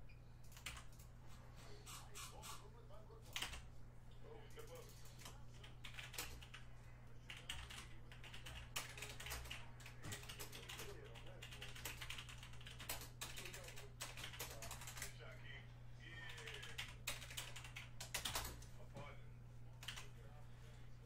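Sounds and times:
low electrical hum: 0.0 - 21.0
typing on a computer keyboard: 0.4 - 1.1, 3.3 - 3.6, 4.6 - 6.6, 7.3 - 15.2, 16.3 - 18.7, 19.8 - 20.1.

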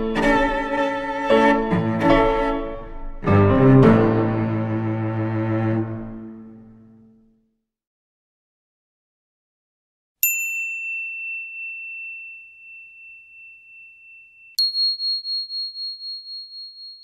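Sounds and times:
high bell chime ringing: 10.2 - 17.0
low bell chime ringing: 10.2 - 17.0.

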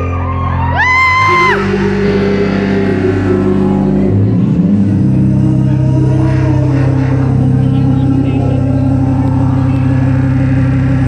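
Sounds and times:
rock band sustained chord: 1.2 - 6.1.

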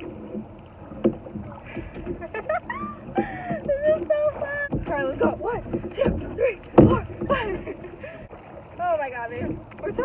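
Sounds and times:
oars working in oarlocks: 0.0 - 10.0
woman laughing: 2.2 - 3.8, 7.2 - 8.1.

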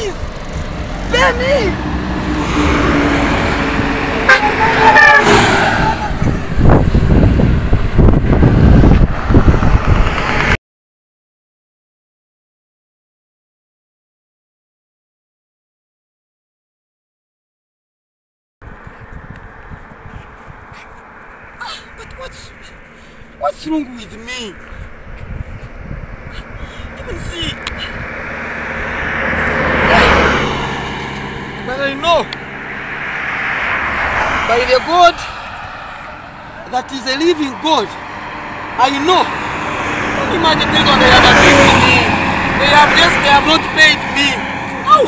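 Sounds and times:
road vehicle passing: 0.0 - 10.6, 18.6 - 45.0
car pulling away: 0.1 - 10.5, 24.1 - 45.0
wind rumble on microphone: 5.4 - 10.6, 18.6 - 22.5, 23.1 - 31.7.

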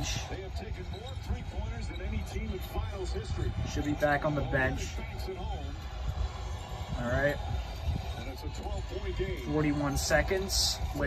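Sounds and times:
faint tv sports commentator: 0.0 - 11.0.

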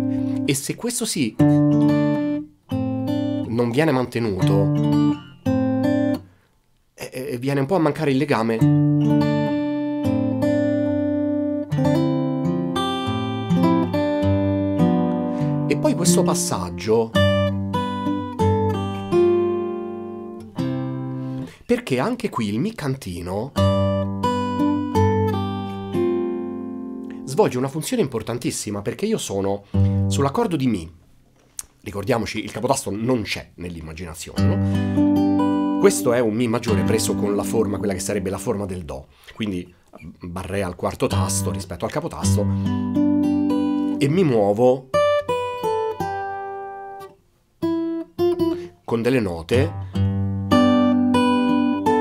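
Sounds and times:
fingerstyle acoustic guitar notes: 0.0 - 0.5, 1.4 - 3.5, 4.2 - 6.3, 8.6 - 21.6, 23.5 - 27.3, 29.6 - 30.4, 34.4 - 38.8, 41.1 - 48.9, 49.5 - 52.0.

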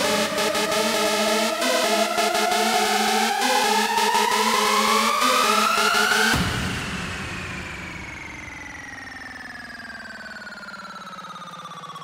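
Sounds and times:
synthesizer tone sliding down: 0.0 - 6.4.

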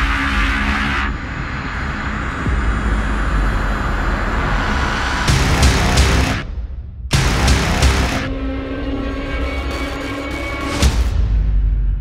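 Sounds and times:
deep bass rumble: 0.0 - 8.4
loud whoosh of noise: 0.0 - 8.5.

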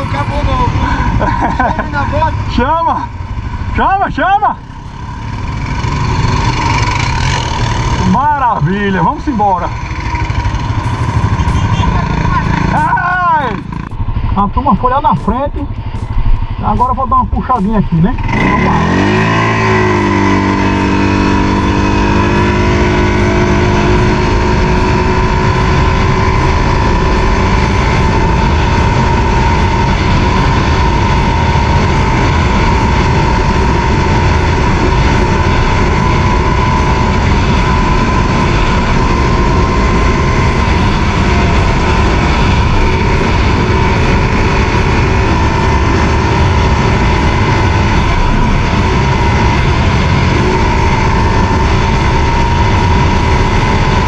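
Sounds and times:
atv engine at full throttle: 0.0 - 54.0.

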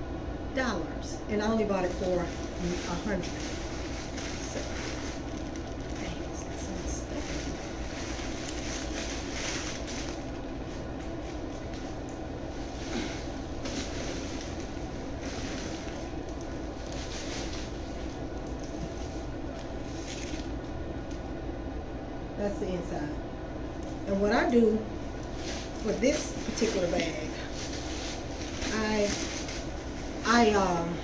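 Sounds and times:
steady low hum: 0.0 - 31.0
tissue paper rustling: 1.6 - 20.7, 25.0 - 31.0.

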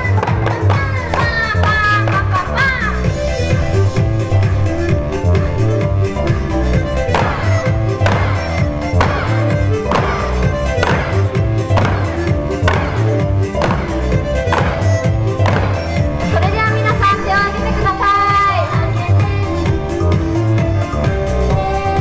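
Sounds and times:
electronic pop music over loudspeakers: 0.0 - 22.0.

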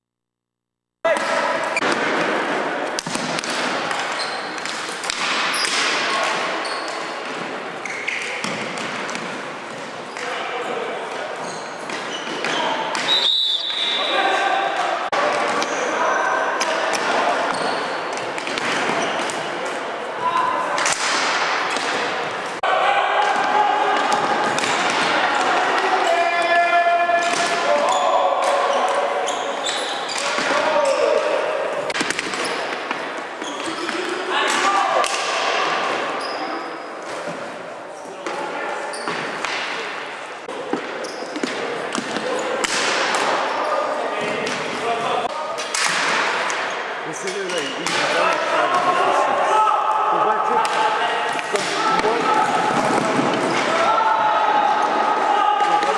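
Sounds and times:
players' voices echoing: 1.0 - 55.9
loud shout: 13.8 - 17.5, 22.6 - 29.3, 34.2 - 35.9, 48.0 - 55.9.

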